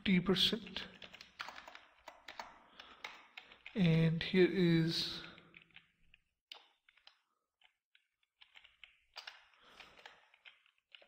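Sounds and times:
computer keyboard typing: 0:00.8 - 0:04.0, 0:05.2 - 0:11.0.

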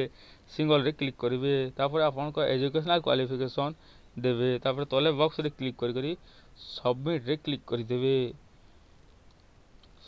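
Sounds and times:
man speaking: 0:00.0 - 0:08.4
faint click: 0:09.0 - 0:10.0.

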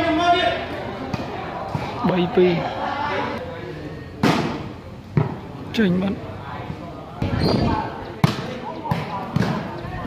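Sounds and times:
spectators chattering and shouting: 0:00.0 - 0:10.0
volleyball being hit: 0:04.2 - 0:05.4, 0:08.2 - 0:09.8.

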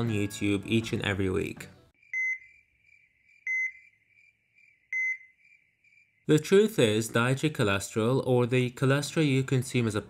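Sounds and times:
faint steady high tone: 0:02.0 - 0:06.3
short electronic beeps: 0:02.1 - 0:02.5, 0:03.5 - 0:03.9.

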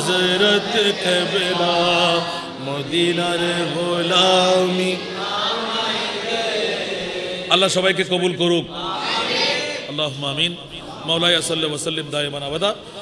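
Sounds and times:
man chanting devotional song: 0:00.0 - 0:05.1, 0:07.4 - 0:08.8, 0:09.9 - 0:13.0.

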